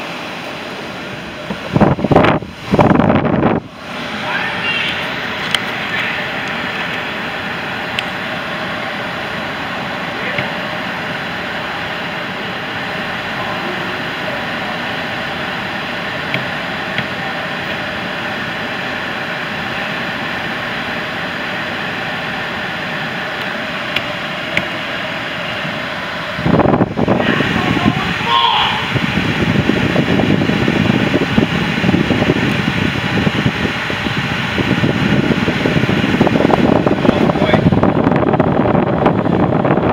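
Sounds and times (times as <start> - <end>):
car engine idling in cabin: 0.0 - 39.9.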